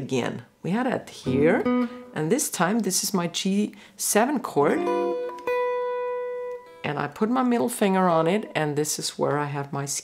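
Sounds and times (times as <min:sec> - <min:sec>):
clean electric guitar notes: 0:01.3 - 0:02.2, 0:04.8 - 0:06.9.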